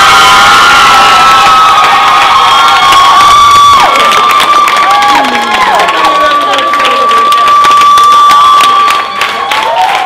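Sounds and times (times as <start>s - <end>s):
audience clapping and cheering: 0.0s - 10.0s
person cheering high: 0.0s - 10.0s.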